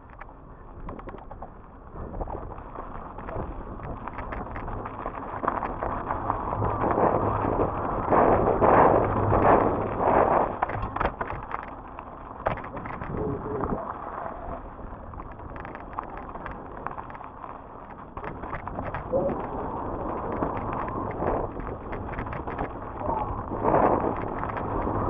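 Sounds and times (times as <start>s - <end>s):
wind on microphone: 0.0s - 11.7s, 12.4s - 17.2s, 17.9s - 25.0s
bike rattling and clicking: 0.0s - 25.0s
bike tyres rolling over dirt: 0.0s - 25.0s.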